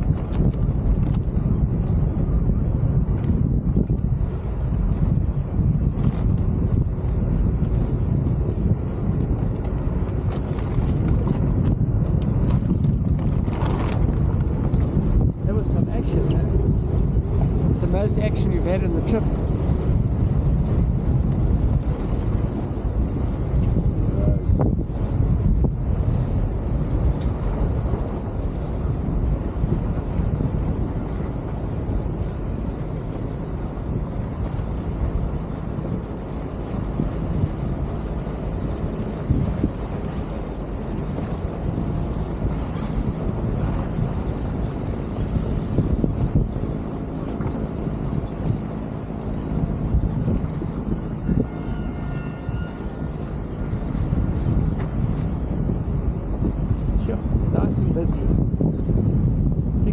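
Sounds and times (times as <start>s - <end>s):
wind buffeting microphone: 0.0s - 59.9s
boat engine droning: 13.4s - 58.4s.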